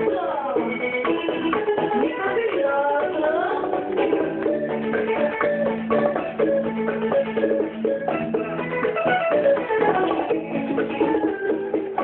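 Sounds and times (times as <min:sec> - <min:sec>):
live band playing: 0:00.0 - 0:12.0
plucked guitar line: 0:00.0 - 0:12.0.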